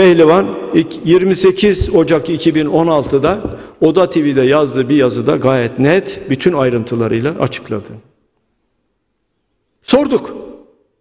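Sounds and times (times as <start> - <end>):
man speaking: 0.0 - 8.2, 9.8 - 10.6.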